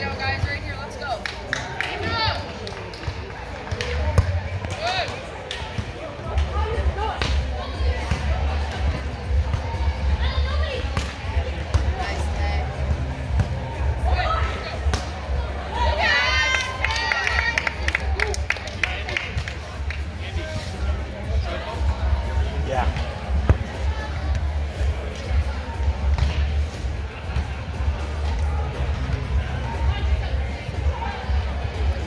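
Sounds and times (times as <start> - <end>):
players' voices and calls: 0.0 - 32.0.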